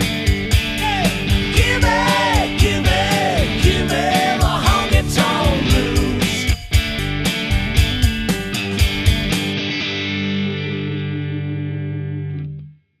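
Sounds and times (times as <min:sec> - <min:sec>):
drums: 0:00.0 - 0:09.8
distorted electric guitar: 0:00.0 - 0:12.7.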